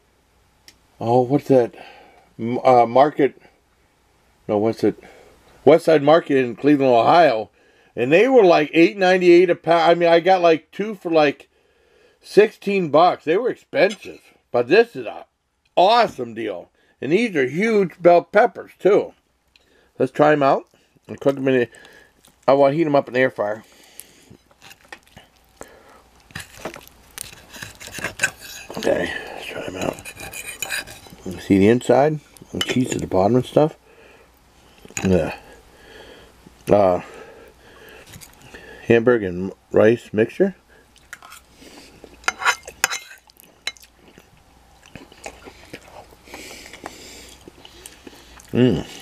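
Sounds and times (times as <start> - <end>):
fork clicking and scraping on plate: 26.3 - 28.9, 29.8 - 31.3
fork clinking on ceramic plate: 42.3 - 43.8.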